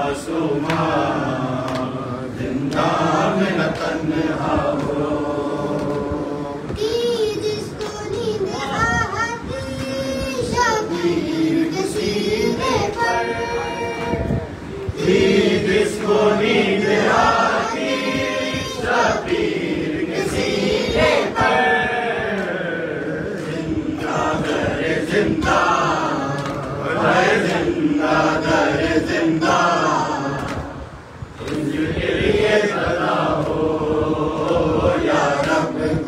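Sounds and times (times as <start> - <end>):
voices chanting a lament: 0.0 - 36.0.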